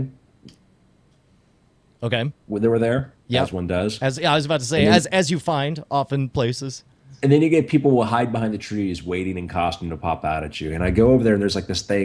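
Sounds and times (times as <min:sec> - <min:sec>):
man speaking: 0:02.0 - 0:12.0.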